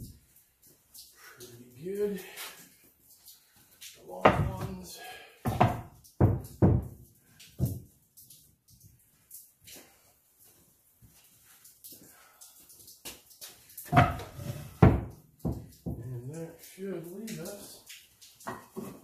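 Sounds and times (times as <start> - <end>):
wooden boards knocking: 4.2 - 4.8, 5.4 - 7.0, 13.9 - 16.0.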